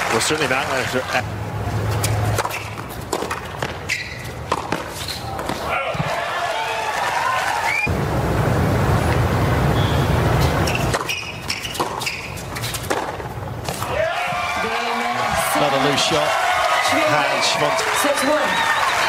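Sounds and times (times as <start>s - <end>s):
crowd applauding and cheering: 0.0s - 1.2s, 5.8s - 7.9s, 13.9s - 19.0s
tennis ball bouncing: 1.9s - 6.2s, 10.4s - 13.9s
tennis balls struck with racquets: 2.0s - 6.2s, 10.4s - 14.0s.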